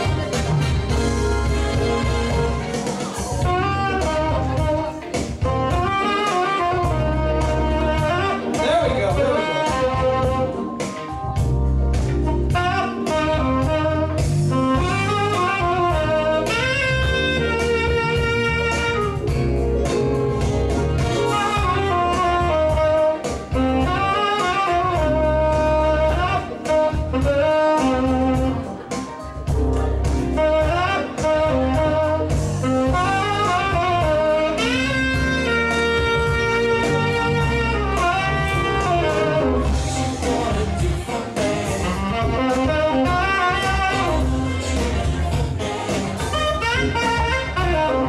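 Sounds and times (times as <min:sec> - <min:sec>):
heavy bass line: 0:00.0 - 0:48.0
keyboard accompaniment: 0:00.0 - 0:48.0
saxophone melody: 0:00.0 - 0:48.0
steady beat: 0:00.0 - 0:48.0.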